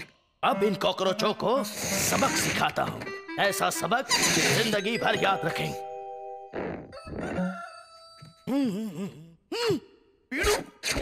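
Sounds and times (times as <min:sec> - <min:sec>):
music: 0:00.4 - 0:06.6
rooster crowing: 0:06.9 - 0:08.4.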